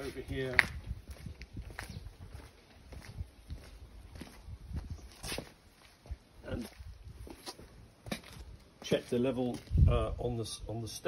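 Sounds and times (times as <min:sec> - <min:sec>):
footsteps on stone paving: 0:00.0 - 0:10.0.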